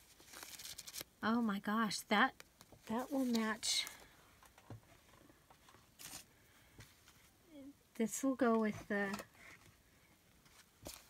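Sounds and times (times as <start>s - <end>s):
paper rustle: 0.0s - 1.1s, 2.8s - 4.1s, 5.8s - 6.3s, 10.4s - 11.0s.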